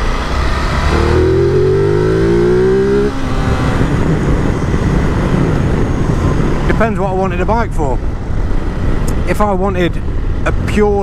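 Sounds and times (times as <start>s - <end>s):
motorcycle engine accelerating: 0.0s - 7.0s
wind and road noise: 0.0s - 11.0s.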